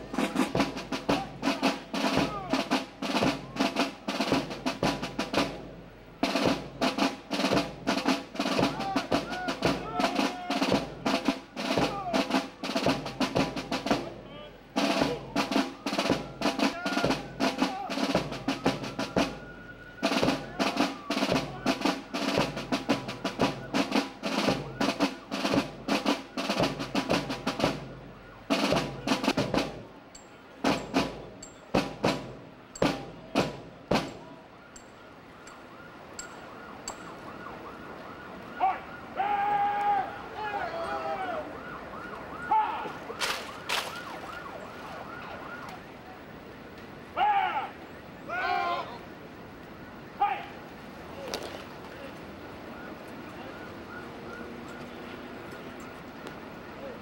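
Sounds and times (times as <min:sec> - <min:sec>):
snare drum rolls: 0:00.0 - 0:30.0, 0:30.6 - 0:34.4, 0:42.0 - 0:45.8
military band playing a march: 0:00.0 - 0:45.9.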